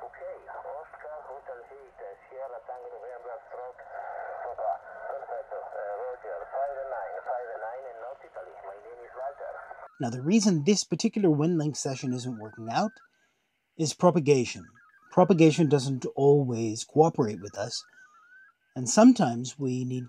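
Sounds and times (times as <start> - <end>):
voice over radio speaker: 0.0 - 13.0, 13.8 - 17.9, 18.8 - 20.0.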